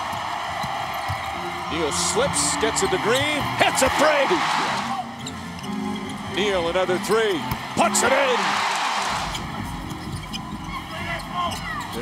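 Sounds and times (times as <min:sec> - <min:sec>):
basketball bouncing: 0:00.0 - 0:01.3
sneaker squeaks: 0:05.1 - 0:06.4, 0:09.2 - 0:12.0.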